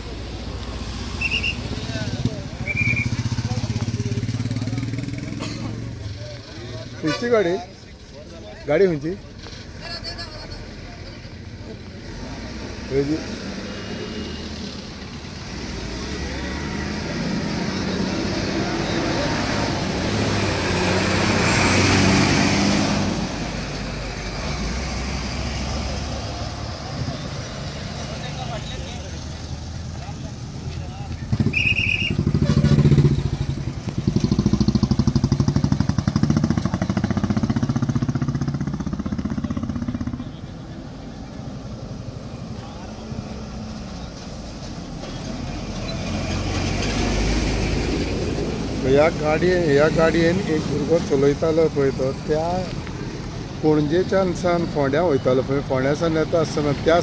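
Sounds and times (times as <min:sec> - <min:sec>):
motorcycle and car engines passing: 0:00.0 - 0:57.0.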